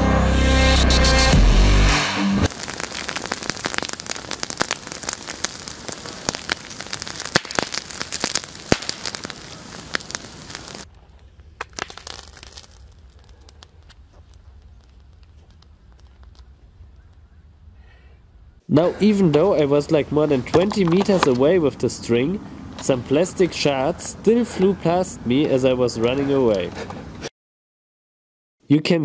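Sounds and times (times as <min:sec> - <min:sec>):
crackle of ticks and pops: 0:02.5 - 0:17.3.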